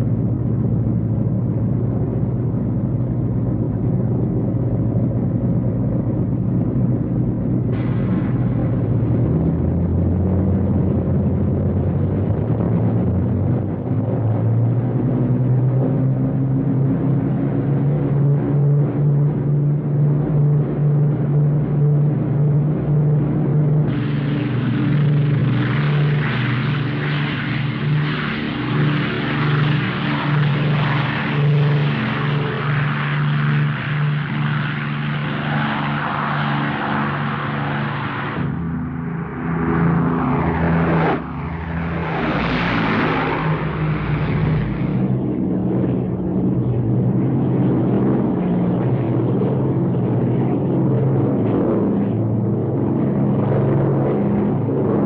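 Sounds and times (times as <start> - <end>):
aircraft engines droning: 0.0 - 55.0
aircraft passing low overhead: 0.0 - 55.0.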